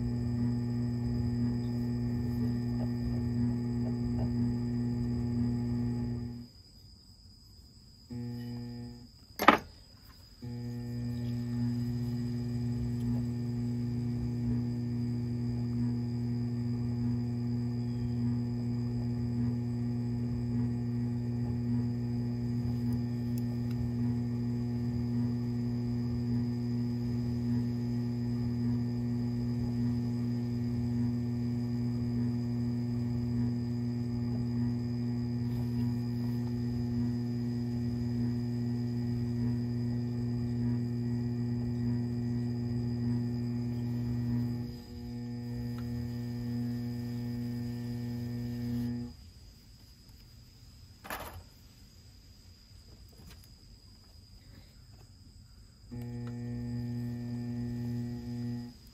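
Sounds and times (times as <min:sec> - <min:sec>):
pottery wheel motor humming: 0:00.0 - 0:06.5, 0:08.1 - 0:49.2, 0:55.9 - 0:58.9.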